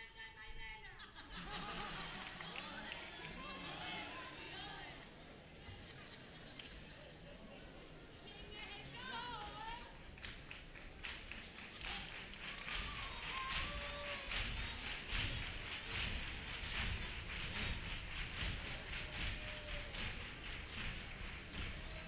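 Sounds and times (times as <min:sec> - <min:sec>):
audience applauding: 0:01.4 - 0:22.0
short calls from audience: 0:11.7 - 0:22.0.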